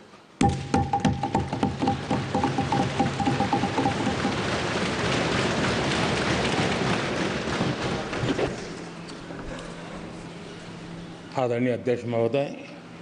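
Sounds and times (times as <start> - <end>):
steady high tone: 0.4 - 4.3
desk thumping and clapping: 0.4 - 8.4.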